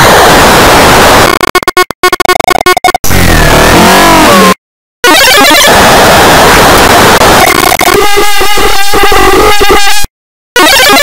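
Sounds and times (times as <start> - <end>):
distorted remix blare: 0.0 - 9.9.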